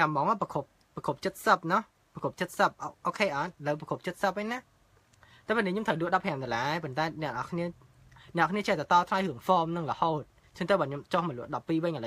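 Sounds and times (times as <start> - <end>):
man talking: 0.0 - 4.7, 5.5 - 12.0.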